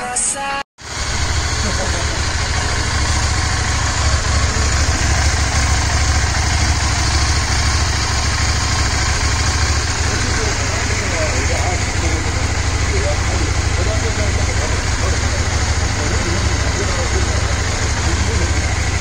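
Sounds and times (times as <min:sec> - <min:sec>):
motorcycle engine idling: 0:00.8 - 0:19.0.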